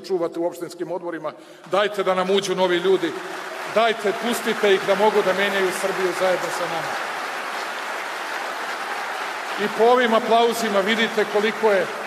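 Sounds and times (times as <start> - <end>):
large audience applauding: 1.7 - 12.0.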